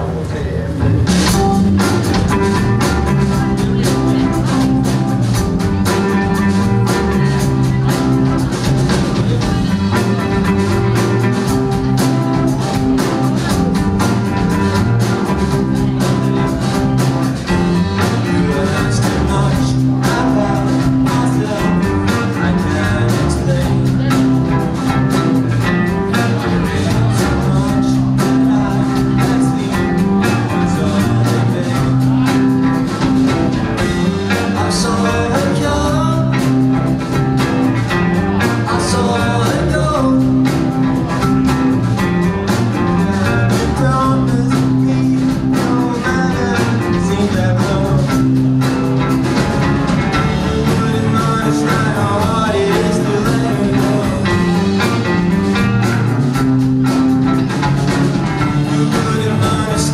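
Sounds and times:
guitars: 0:00.0 - 0:59.9
sustained bass guitar notes: 0:00.0 - 0:59.9
drum kit beat: 0:00.7 - 0:59.9.

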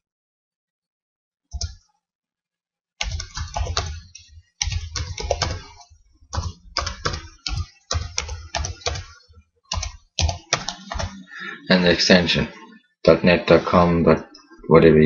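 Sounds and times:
keyboard typing: 0:01.5 - 0:01.8, 0:03.0 - 0:12.9.

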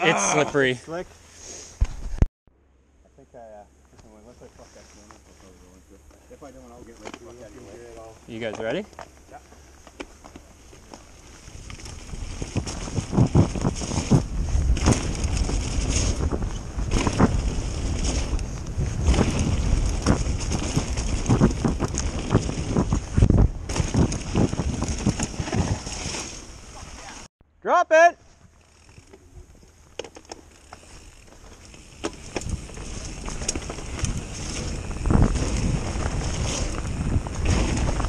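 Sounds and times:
tyres running over dirt: 0:05.1 - 0:27.2, 0:28.5 - 0:38.0
bike rattling and knocking: 0:06.7 - 0:26.5, 0:28.6 - 0:38.0
wind buffeting microphone: 0:11.4 - 0:25.9, 0:32.1 - 0:38.0.

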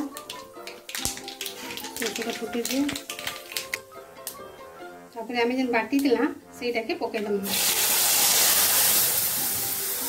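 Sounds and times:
chillies crackling in hot oil: 0:00.0 - 0:04.0, 0:07.4 - 0:10.0
soft background music: 0:00.0 - 0:10.0.

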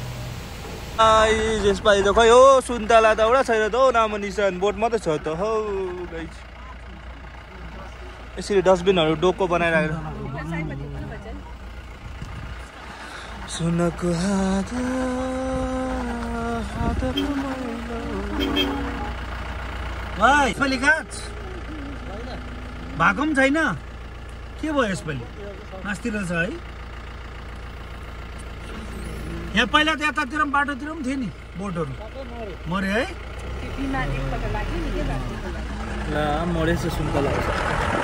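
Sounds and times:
car engine and road rumble: 0:00.0 - 0:38.0.

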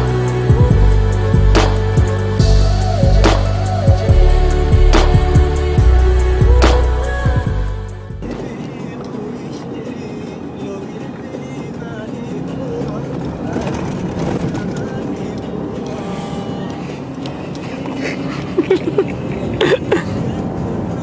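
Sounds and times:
engine and tyres rumbling on sand: 0:08.2 - 0:21.0.

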